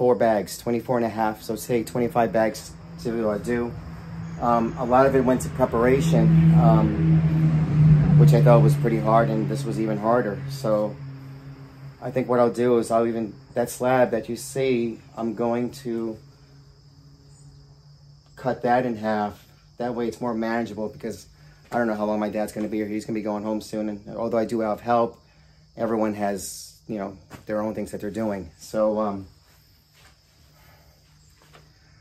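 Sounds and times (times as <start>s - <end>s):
insect trill: 0.0s - 32.0s.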